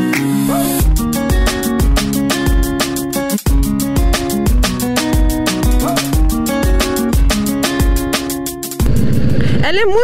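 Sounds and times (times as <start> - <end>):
background music with beat: 0.0 - 8.9
woman speaking: 9.6 - 10.0.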